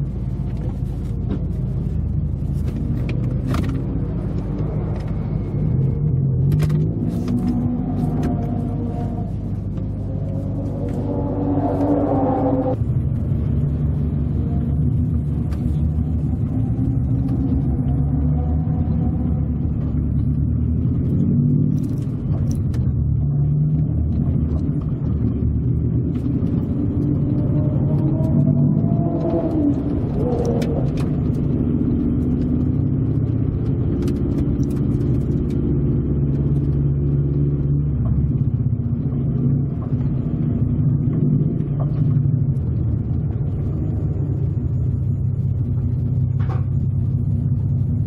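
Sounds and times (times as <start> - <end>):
car engine revving from inside cabin: 3.0 - 13.0, 14.3 - 46.0.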